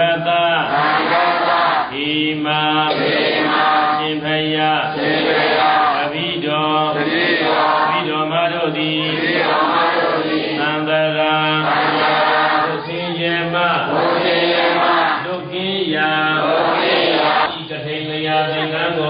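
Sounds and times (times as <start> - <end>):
monk chanting: 0.0 - 19.0.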